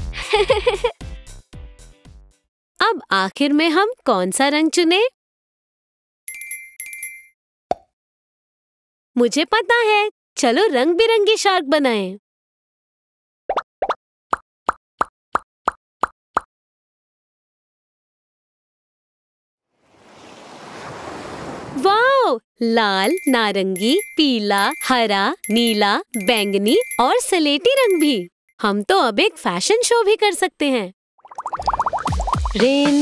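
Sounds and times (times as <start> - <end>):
twinkling chimes: 6.3 - 7.3, 23.0 - 28.3.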